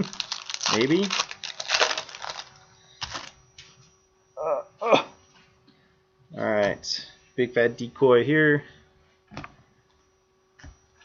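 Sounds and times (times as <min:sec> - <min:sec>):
foil wrappers crinkling: 0:00.0 - 0:03.4.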